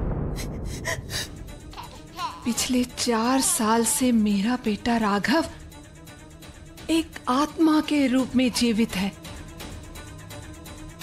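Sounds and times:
droning dramatic music: 0.0 - 11.0
woman gasping: 0.4 - 2.6.

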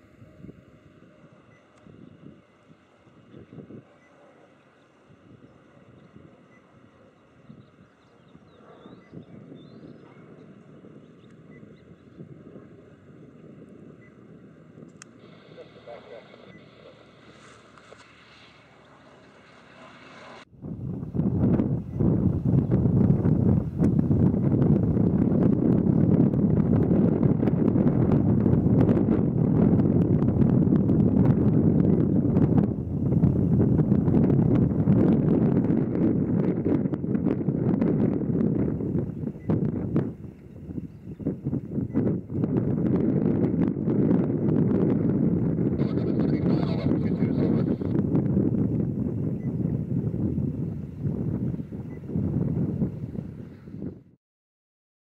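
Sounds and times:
faint plane engine: 0.0 - 54.0
wind buffeting microphone: 0.0 - 54.2.

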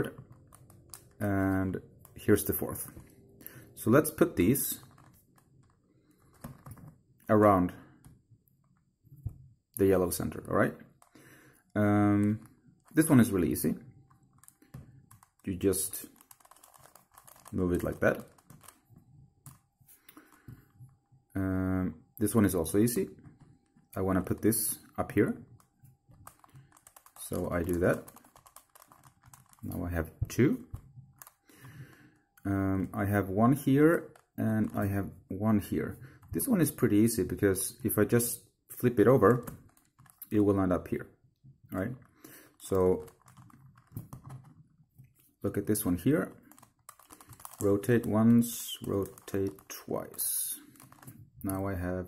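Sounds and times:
puzzle cube plastic clicks: 0.0 - 1.2, 10.9 - 20.8, 25.5 - 32.5, 38.8 - 40.5, 42.0 - 44.6, 45.6 - 51.6.

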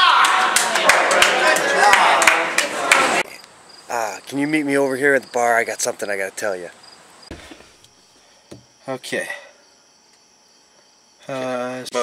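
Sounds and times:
people's voices: 0.0 - 4.6.

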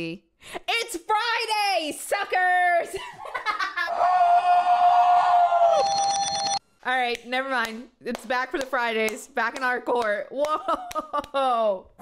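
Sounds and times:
high electronic alarm tone: 5.7 - 6.6
woman laughing: 10.4 - 11.8.

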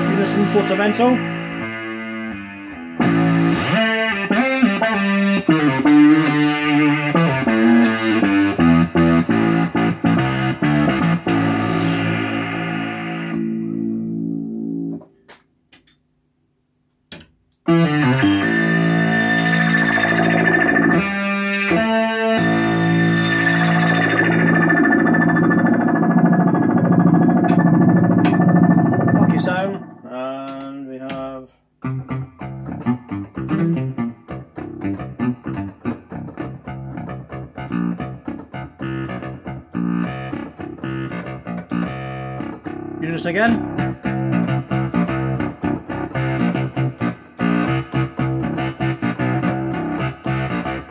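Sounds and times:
synthesizer notes: 0.0 - 15.0, 17.7 - 30.3, 33.6 - 50.9.

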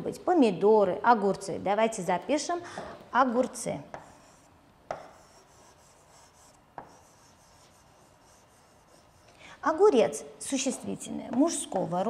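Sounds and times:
pen tip rubbing on screen: 5.1 - 9.3.

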